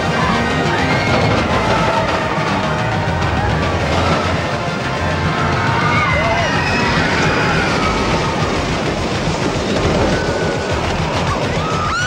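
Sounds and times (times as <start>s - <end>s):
music: 0.0s - 12.0s
roller coaster rumbling on track: 0.0s - 12.0s.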